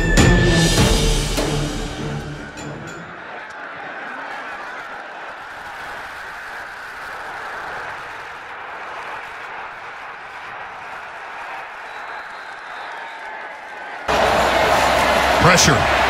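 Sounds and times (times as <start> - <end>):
stadium crowd cheering: 0.0 - 16.0.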